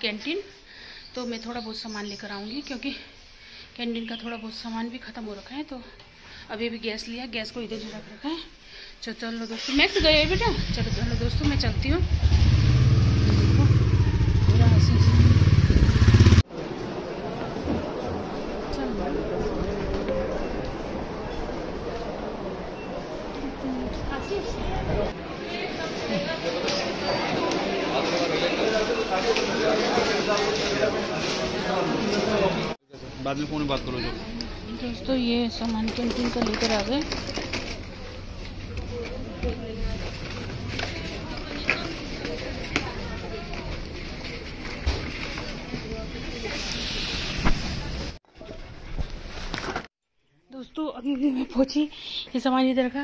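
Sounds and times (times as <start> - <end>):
motorbike engine running: 10.0 - 16.4
murmur of voices: 16.5 - 48.6.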